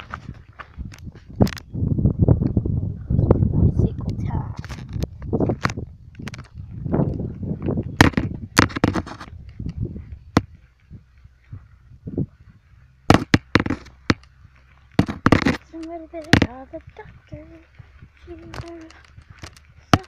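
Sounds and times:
wind on microphone: 0.0s - 20.0s.

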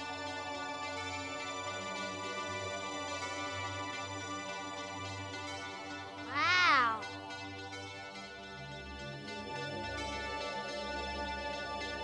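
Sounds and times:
soft background music: 0.0s - 12.0s
woman's wordless exclamation: 6.3s - 7.0s.

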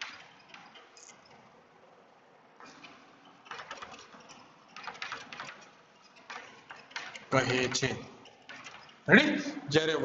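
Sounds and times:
chalk tapping and scratching: 2.6s - 9.1s.

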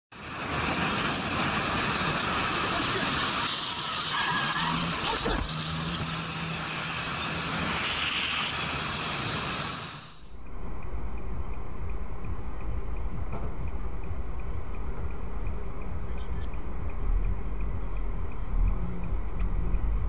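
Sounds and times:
wind and road noise: 0.1s - 20.0s
steady low hum: 8.6s - 20.0s.

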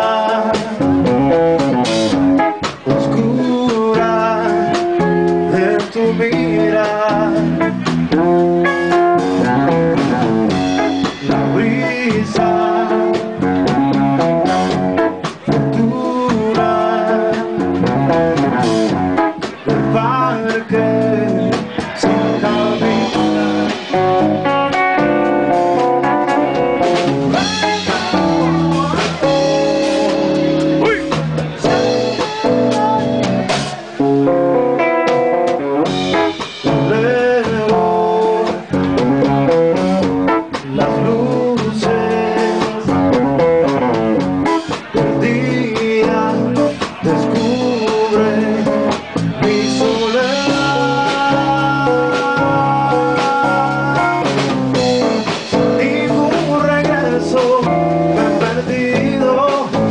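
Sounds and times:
person singing: 0.0s - 1.8s, 2.8s - 34.9s, 35.9s - 59.9s
live band playing: 0.0s - 59.9s.

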